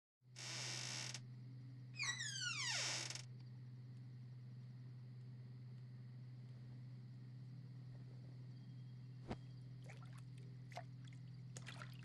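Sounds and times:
steady low hum: 3.3s - 12.0s.

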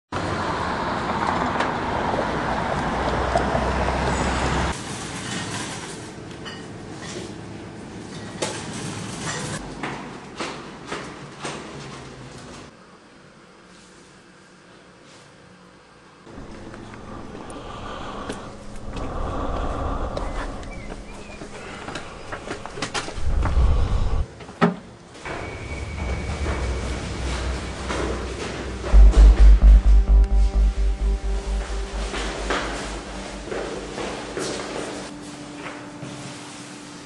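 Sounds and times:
street traffic: 0.2s - 5.2s, 16.3s - 24.3s
low steady rumble: 16.3s - 24.2s, 27.1s - 35.1s.

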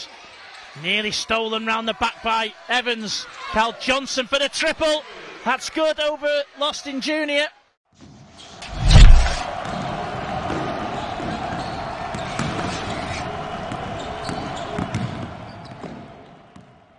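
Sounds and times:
deep boom: 8.7s - 9.4s.

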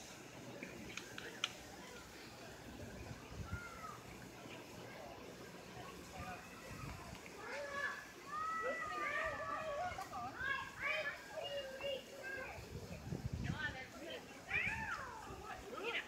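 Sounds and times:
faint voices: 0.0s - 16.0s.

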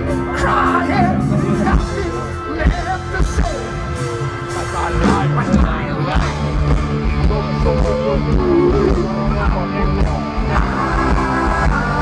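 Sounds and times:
hard rock band playing live: 0.0s - 12.0s.

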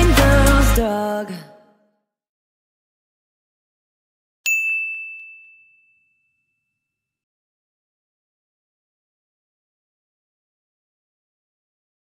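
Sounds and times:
bright bell ding: 4.5s - 6.9s.

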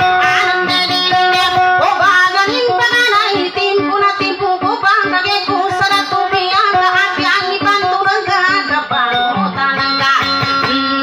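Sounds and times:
plucked string accompaniment: 0.0s - 11.0s
woman singing into a microphone: 0.0s - 11.0s.

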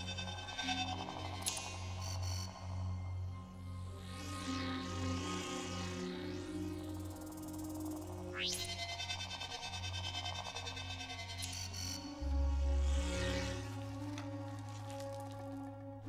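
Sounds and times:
low film score music: 0.0s - 16.0s.

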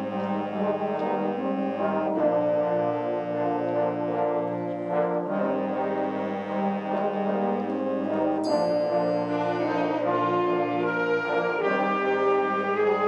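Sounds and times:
concert band playing sustained chords: 0.0s - 13.0s.

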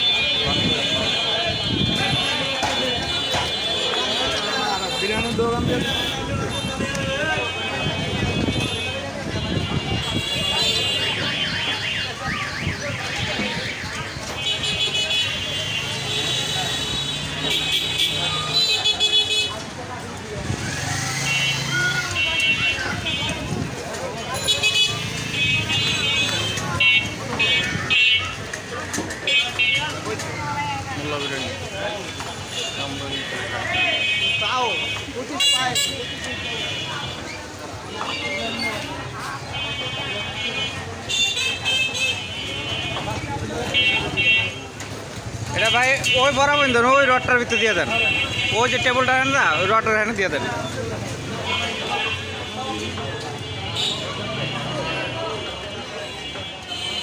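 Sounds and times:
vehicle horns: 0.0s - 19.8s, 20.5s - 57.0s
traffic: 0.0s - 57.0s
voices: 0.0s - 57.0s.

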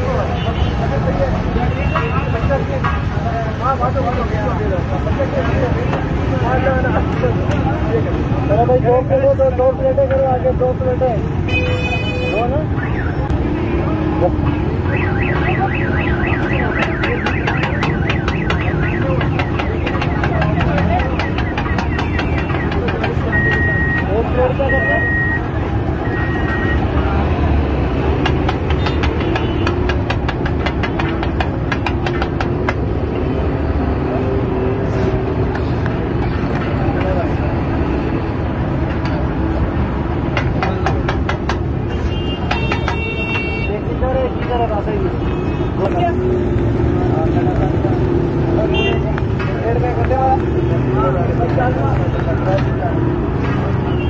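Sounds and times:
street traffic: 0.0s - 54.0s
voices: 0.0s - 54.0s
short high beeps: 23.3s - 24.1s, 24.7s - 26.8s.

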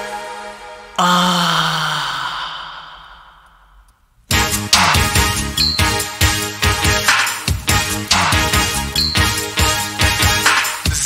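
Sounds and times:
breathy sigh with low voice: 1.0s - 3.9s.

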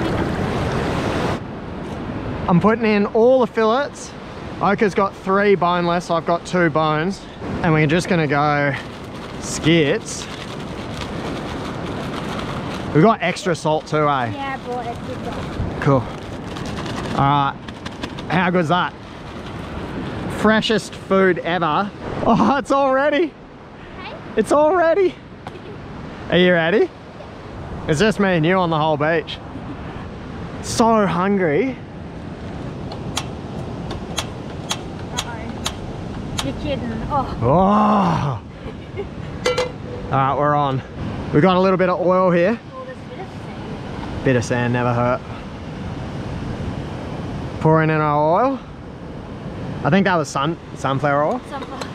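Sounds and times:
surf rushing on beach: 0.0s - 51.9s
plastic bag rustling: 8.4s - 20.2s.

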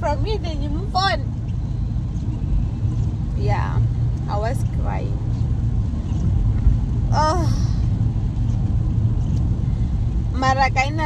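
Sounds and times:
woman's voice: 0.0s - 1.3s, 3.4s - 5.2s, 7.1s - 7.8s, 10.4s - 11.0s
car cabin road rumble: 0.0s - 11.0s.

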